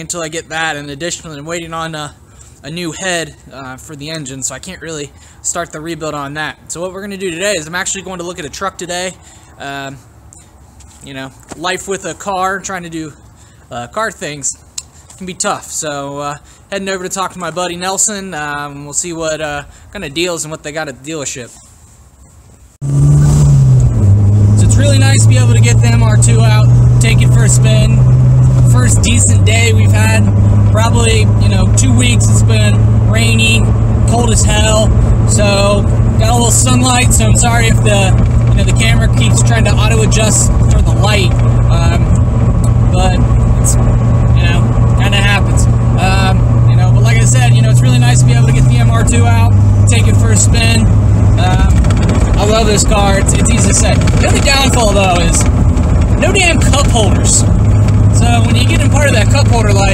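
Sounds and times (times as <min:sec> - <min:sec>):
car engine heard from cabin: 0:22.8 - 0:59.9.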